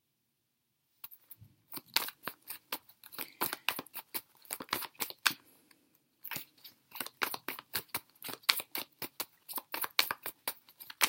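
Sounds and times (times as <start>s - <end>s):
cards being shuffled: 1.0s - 5.4s, 6.3s - 11.0s.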